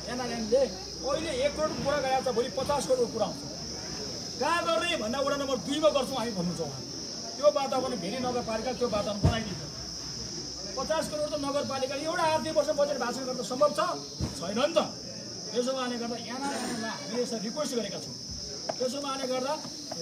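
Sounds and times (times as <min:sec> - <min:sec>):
steady high-pitched hiss: 0:00.0 - 0:20.0.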